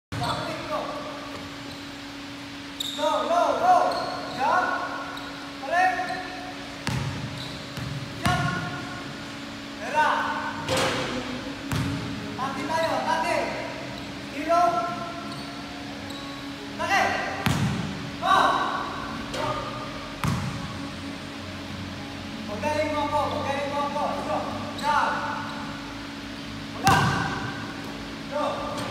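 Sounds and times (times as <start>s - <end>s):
steady hall background: 0.1s - 28.9s
basketball bounce on hardwood: 6.8s - 7.2s
basketball bouncing on hardwood floor: 6.8s - 8.6s, 20.2s - 20.6s.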